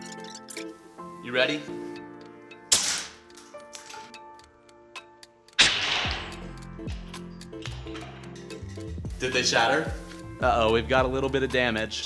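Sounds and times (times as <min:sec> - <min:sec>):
background music with ticking beat: 0:00.0 - 0:12.0.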